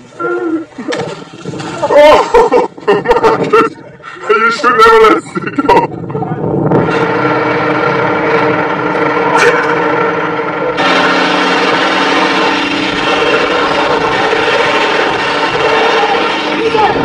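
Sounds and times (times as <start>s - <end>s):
engine drone: 0.0s - 17.0s
road noise: 3.6s - 17.0s
quad bike engine in mud: 10.7s - 17.0s.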